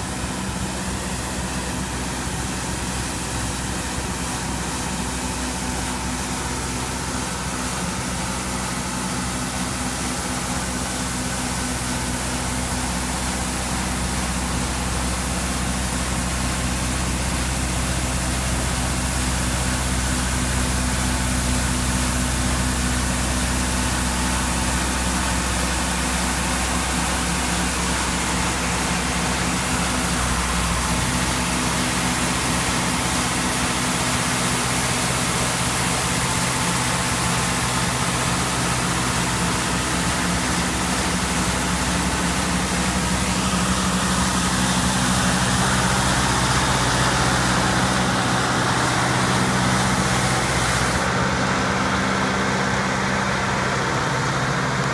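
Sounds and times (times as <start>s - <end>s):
road sweeper engine running: 0.0s - 54.9s
rotating brush sweeping pavement: 26.3s - 51.2s.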